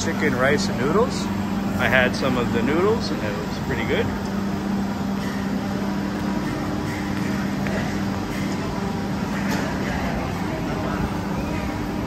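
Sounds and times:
low machine hum: 0.0 - 12.0
rumbling background din: 0.0 - 12.0.

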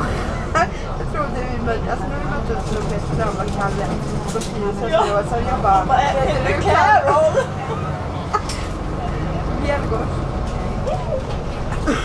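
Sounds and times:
bus running hum: 0.0 - 12.0.

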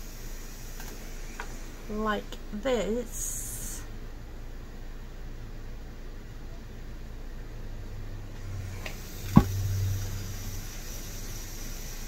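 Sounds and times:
steady low hum: 0.0 - 12.0
sharp knock: 9.3 - 9.6.

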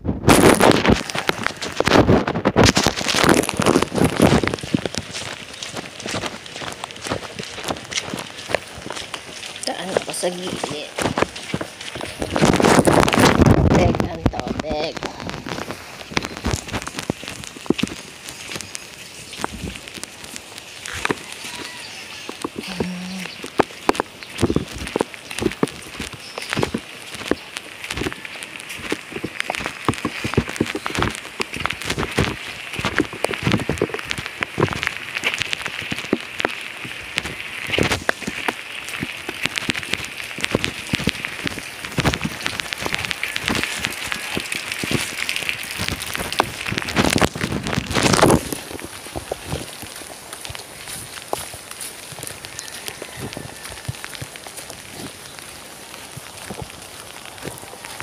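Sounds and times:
raindrops tapping: 0.0 - 58.0
steady rain falling: 0.0 - 58.0.

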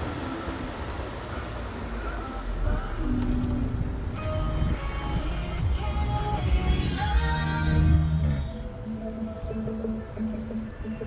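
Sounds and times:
car road and engine rumble: 0.0 - 11.0
music: 2.6 - 11.0.

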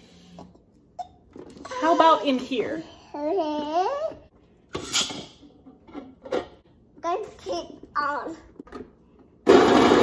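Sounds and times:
toddler babbling: 2.9 - 4.3.

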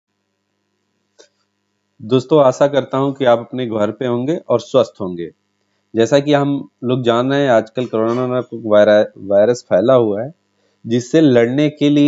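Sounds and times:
faint steady hum: 0.1 - 12.0.

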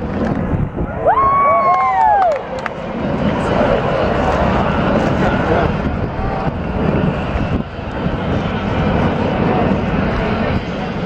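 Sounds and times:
wind buffeting microphone: 0.0 - 11.0
crowd chatter: 2.4 - 11.0.

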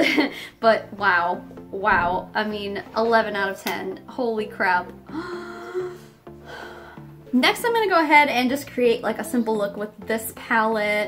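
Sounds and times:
quiet background music: 0.0 - 11.0
woman gasping: 5.1 - 7.2.

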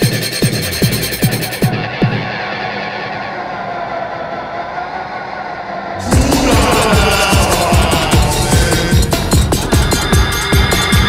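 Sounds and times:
electronic dance beat: 6.0 - 11.0.

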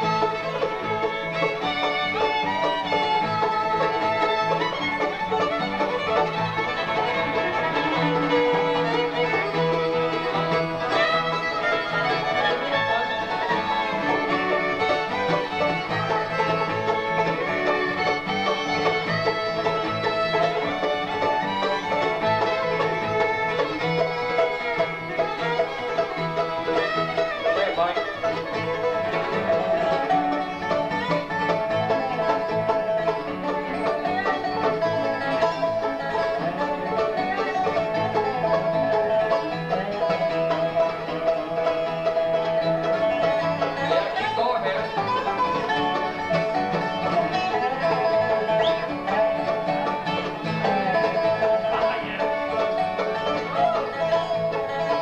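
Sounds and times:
banjo playing: 0.0 - 55.0
dobro playing lead: 0.0 - 55.0
fiddle playing lead: 0.0 - 55.0
guitar backing: 0.0 - 55.0.

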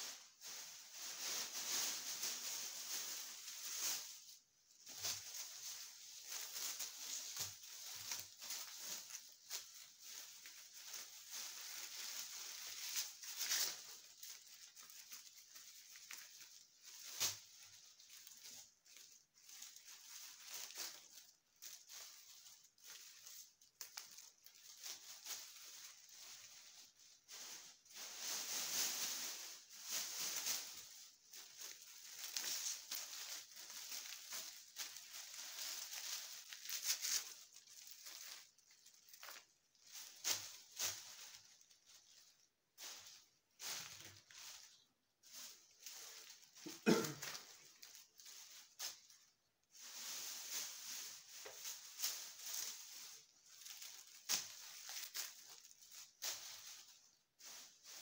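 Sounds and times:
dry branches rustling and crackling: 0.0 - 58.0.

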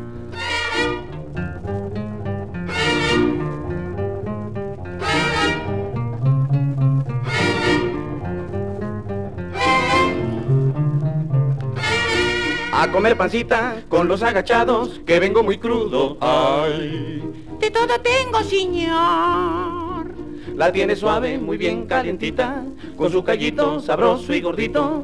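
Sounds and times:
mariachi band playing: 0.0 - 25.0.

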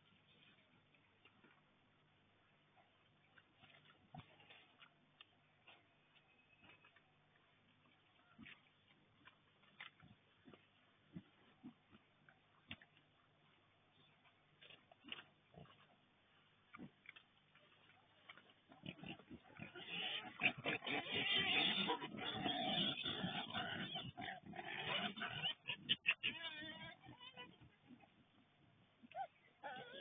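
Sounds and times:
boars snuffling: 0.0 - 30.0
boars grunting and scuffling: 2.6 - 30.0.

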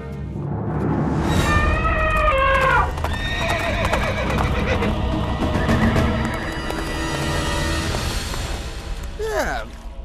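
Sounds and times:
horse whinnying: 1.8 - 4.9.

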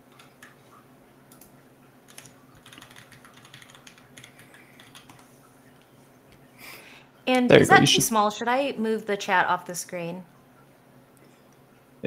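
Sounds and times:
keyboard typing: 0.1 - 5.3.

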